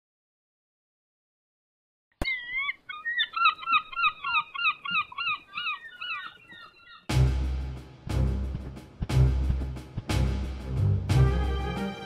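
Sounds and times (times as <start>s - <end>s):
gull calls: 2.2s - 7.1s.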